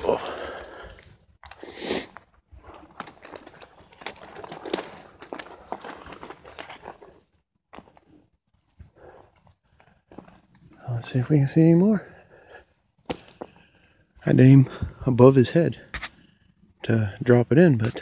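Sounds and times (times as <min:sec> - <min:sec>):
footsteps crunching on gravel: 0:00.0 - 0:08.0
handling noise: 0:02.6 - 0:07.2.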